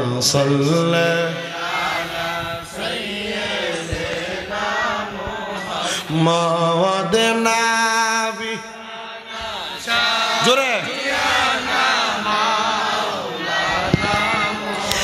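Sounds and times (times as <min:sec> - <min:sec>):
man chanting into a microphone: 0:00.0 - 0:02.8, 0:05.3 - 0:11.7.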